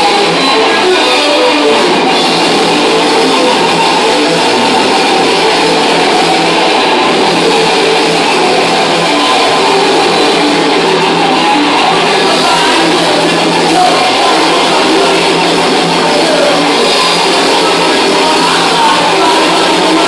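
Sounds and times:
thrash metal band playing live: 0.0s - 20.0s.

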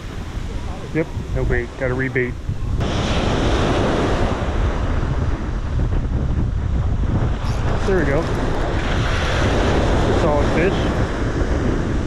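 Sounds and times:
small waves breaking on beach: 0.0s - 5.9s, 6.7s - 12.0s
wind buffeting microphone: 0.0s - 12.0s.

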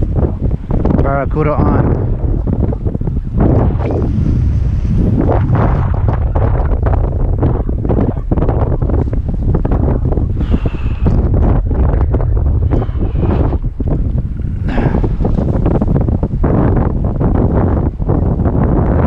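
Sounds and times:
strong wind buffeting microphone: 0.0s - 19.0s.

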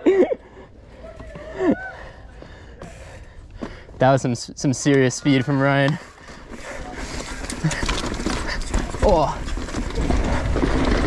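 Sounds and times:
bike knocking and rattling: 0.9s - 11.0s
tyres crunching over dirt and rocks: 5.8s - 11.0s.

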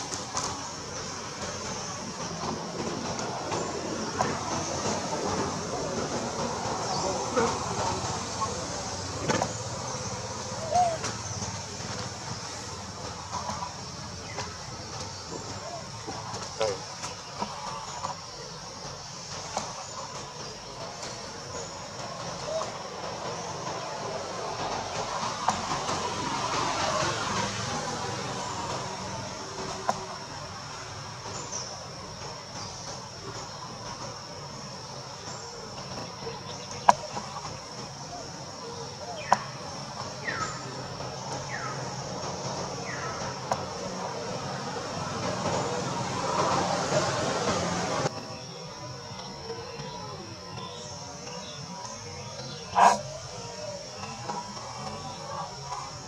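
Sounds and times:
steady high-pitched drone: 0.0s - 56.0s
monkeys calling and squeaking: 6.8s - 12.1s, 52.4s - 56.0s.

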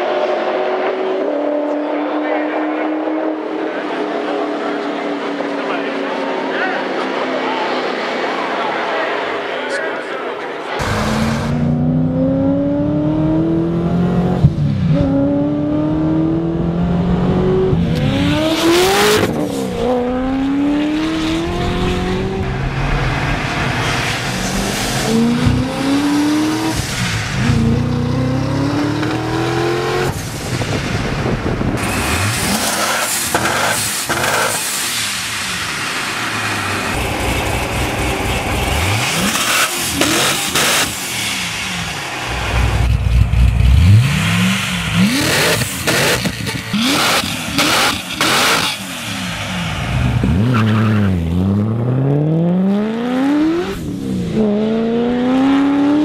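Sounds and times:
car engine accelerating hard: 10.8s - 56.0s.

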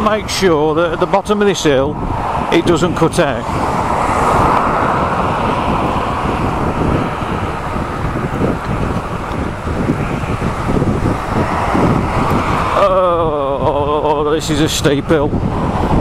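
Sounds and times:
cars passing: 0.0s - 16.0s
road noise: 0.0s - 16.0s
wind on microphone: 0.0s - 16.0s.

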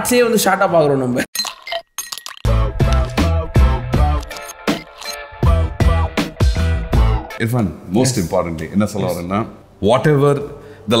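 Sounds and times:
man speaking: 7.4s - 11.0s.

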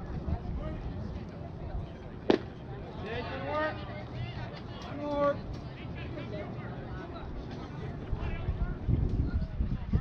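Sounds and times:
faint background voices: 0.0s - 10.0s
baseball smacking into glove: 2.3s - 2.5s.

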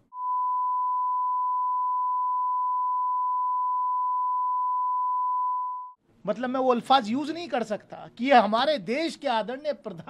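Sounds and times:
censor bleep tone: 0.0s - 6.0s.

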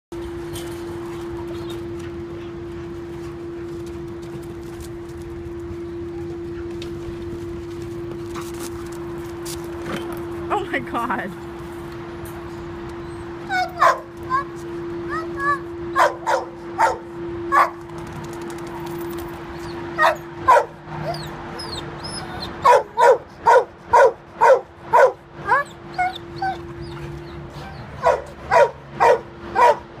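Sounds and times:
steady humming tone: 0.2s - 30.0s
dog whining: 13.0s - 14.5s, 20.9s - 22.8s, 25.4s - 28.3s
dog barking: 13.8s - 14.1s, 16.0s - 17.8s, 20.0s - 20.8s, 22.6s - 25.7s, 28.0s - 29.9s.

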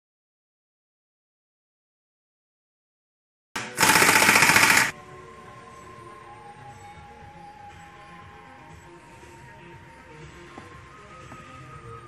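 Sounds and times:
impact wrench hammering: 3.6s - 4.9s.

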